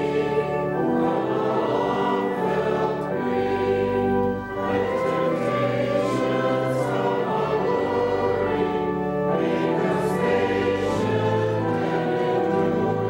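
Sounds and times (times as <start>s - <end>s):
choir singing a slow hymn: 0.0s - 13.0s.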